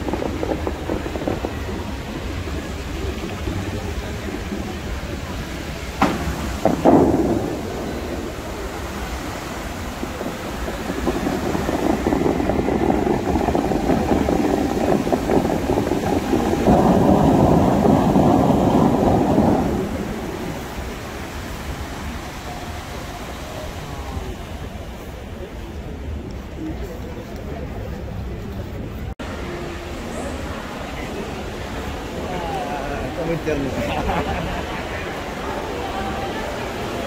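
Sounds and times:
fountain water rushing: 0.0 - 37.0
sharp bang: 6.0 - 8.5.

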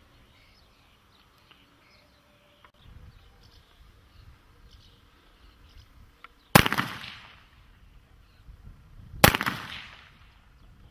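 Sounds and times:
gunshots with echo: 6.6 - 7.4, 9.2 - 10.2.

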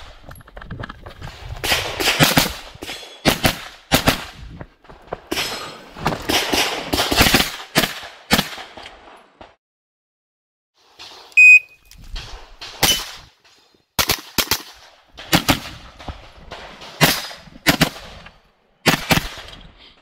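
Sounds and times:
electronic start beep: 11.4 - 11.8.

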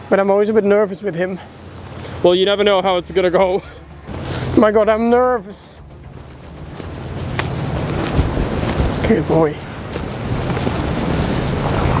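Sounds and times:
wind buffeting microphone: 1.6 - 12.0
dull low thumps: 5.8 - 12.0.

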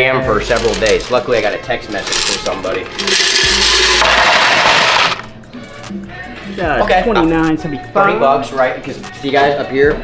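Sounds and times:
coins pouring into plastic bin: 0.4 - 1.3, 2.0 - 5.2.

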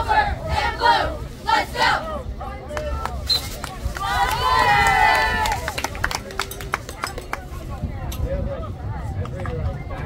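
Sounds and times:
outdoor crowd: 0.0 - 10.0.

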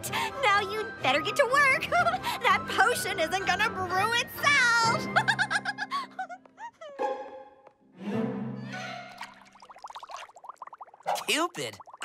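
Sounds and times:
cartoon potion bubbling: 9.1 - 12.0.

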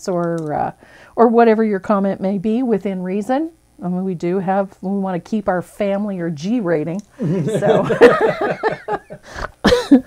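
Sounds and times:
person laughing: 7.2 - 10.0.

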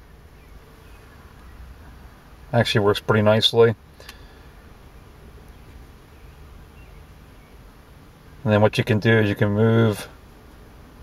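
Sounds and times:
car interior hum and hiss: 0.0 - 11.0.

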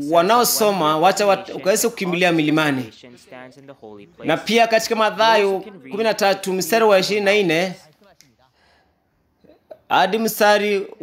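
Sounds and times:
man speaking: 0.0 - 8.8, 9.4 - 11.0.

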